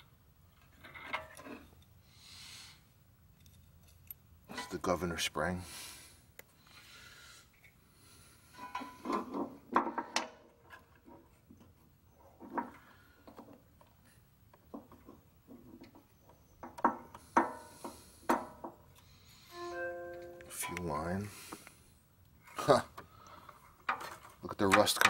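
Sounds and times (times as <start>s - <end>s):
small metal parts clicking and rubbing: 3.3s - 4.8s
clear held tones: 19.4s - 20.8s.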